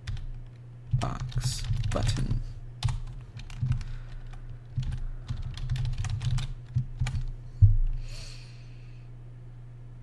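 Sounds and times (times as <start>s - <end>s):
low hum: 0.0s - 10.0s
heavy keystroke thump: 4.7s - 8.0s.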